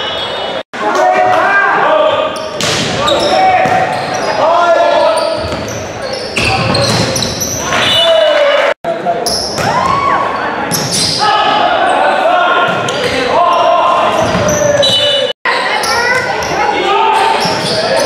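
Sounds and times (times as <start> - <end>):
people shouting and calling: 9.6 - 18.0.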